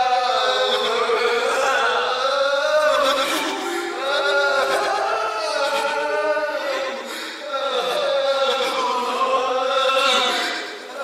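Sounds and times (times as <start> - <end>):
wordless chanting voices: 0.0 - 11.0.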